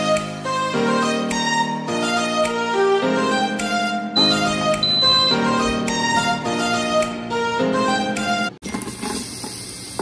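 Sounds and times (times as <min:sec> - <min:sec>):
background music: 0:00.0 - 0:08.6
onions sizzling in hot oil: 0:08.8 - 0:10.0.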